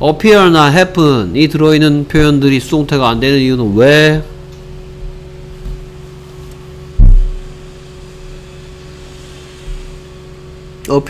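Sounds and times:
low electrical hum: 0:00.0 - 0:11.0
dull low thump: 0:07.0 - 0:07.6.

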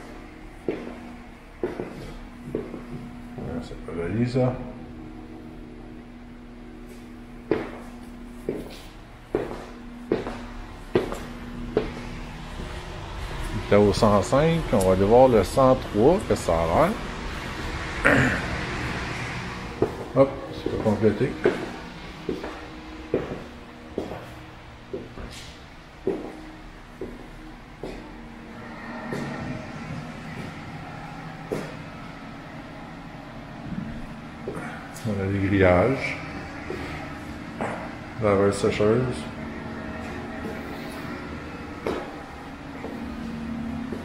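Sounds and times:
footsteps on hard floor: 0:00.0 - 0:03.8, 0:06.8 - 0:13.6, 0:19.6 - 0:32.6, 0:33.5 - 0:35.1, 0:35.7 - 0:44.0
steady low hum: 0:00.0 - 0:44.0.

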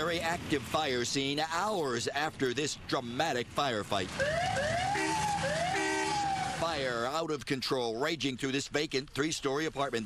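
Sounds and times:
emergency vehicle siren: 0:04.1 - 0:06.8.

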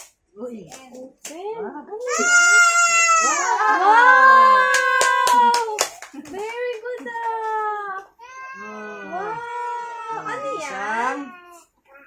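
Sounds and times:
sharp claps: 0:04.7 - 0:08.1.

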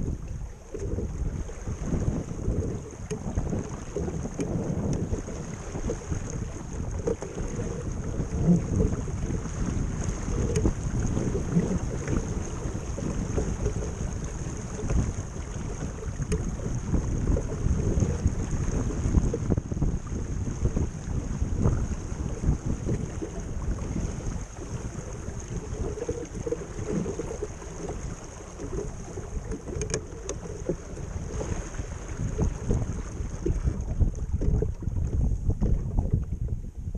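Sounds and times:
water rushing along boat hull: 0:00.0 - 0:36.9
wind buffeting microphone: 0:00.0 - 0:36.9.

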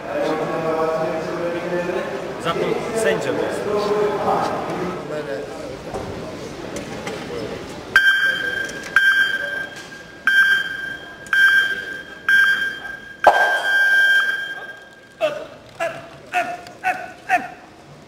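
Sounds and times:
long electronic beep: 0:08.0 - 0:15.2
short electronic beeps: 0:08.0 - 0:15.2.

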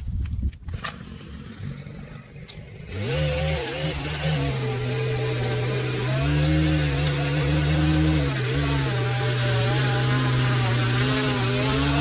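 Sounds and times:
edger engine revving: 0:00.7 - 0:12.0.

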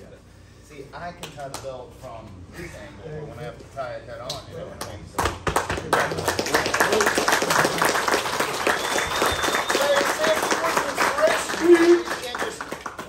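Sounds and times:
group clapping: 0:01.2 - 0:01.8, 0:04.3 - 0:13.0.

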